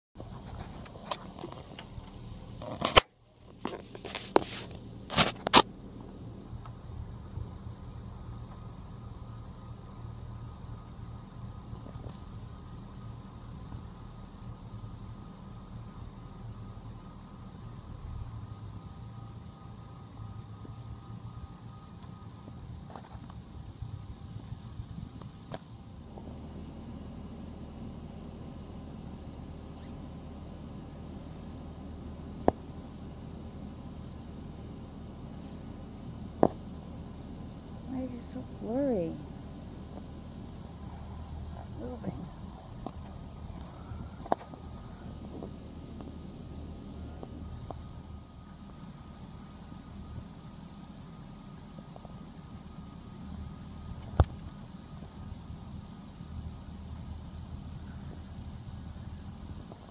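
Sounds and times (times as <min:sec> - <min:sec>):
low background hum: 0:00.2 - 0:59.9.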